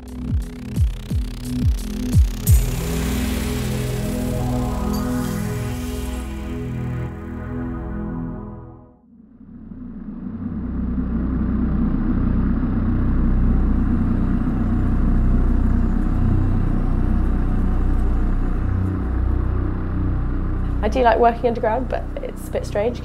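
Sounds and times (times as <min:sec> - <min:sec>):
low rumble of room noise: 0:09.0 - 0:23.0.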